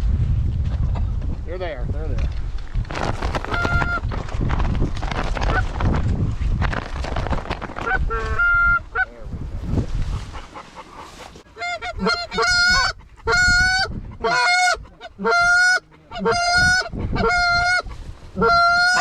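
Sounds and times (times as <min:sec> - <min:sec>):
goose call honks: 0:10.4 - 0:17.8.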